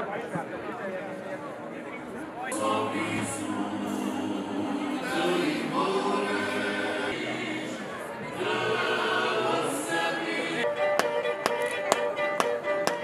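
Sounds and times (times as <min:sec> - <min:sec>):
voices singing together: 0:02.5 - 0:11.4
bowed fiddle folk dance tune: 0:10.6 - 0:13.0
dancers' steps tapping: 0:11.0 - 0:13.0.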